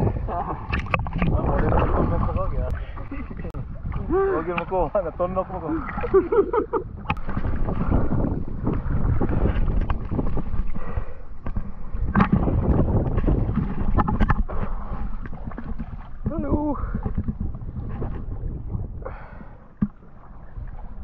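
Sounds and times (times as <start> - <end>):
seawater sloshing and splashing: 0.0 - 21.0
wind buffeting microphone: 0.0 - 21.0.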